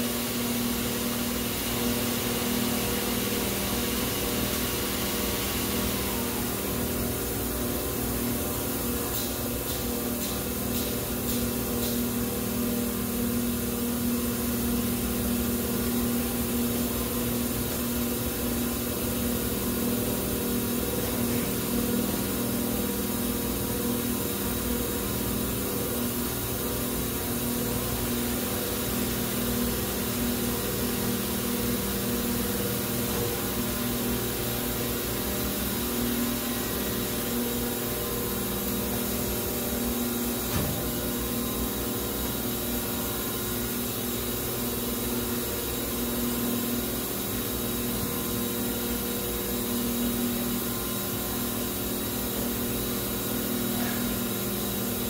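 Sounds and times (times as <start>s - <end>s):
hydraulic machine humming: 0.0s - 55.0s.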